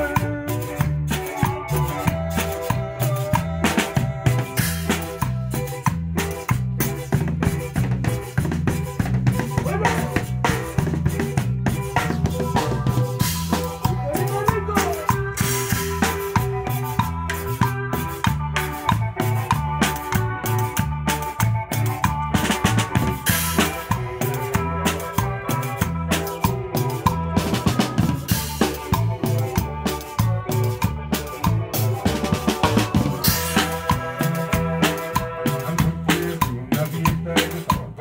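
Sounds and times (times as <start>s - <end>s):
bass line: 0.0s - 38.0s
drum kit beat: 0.0s - 38.0s
electric guitar: 0.0s - 38.0s.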